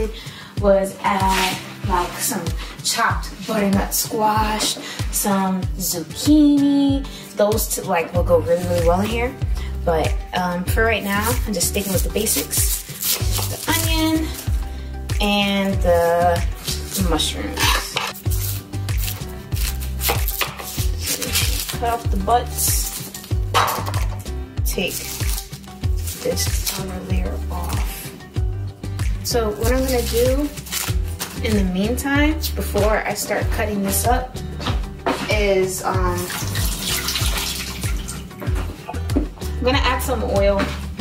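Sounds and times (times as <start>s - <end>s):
background music with deep bass: 0.0s - 41.0s
low thumping beat: 25.8s - 36.1s, 36.7s - 41.0s.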